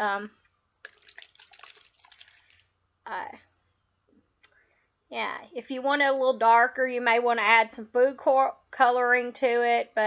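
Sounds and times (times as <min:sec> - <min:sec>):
liquid sloshing in plastic bottle: 0:00.8 - 0:02.8.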